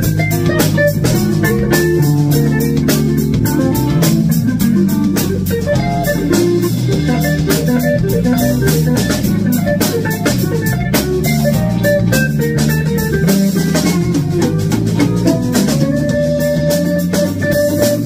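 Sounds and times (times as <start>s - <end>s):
drum kit steady beat: 0.0s - 18.0s
electric bass: 0.0s - 18.0s
electric guitar playing: 0.0s - 18.0s.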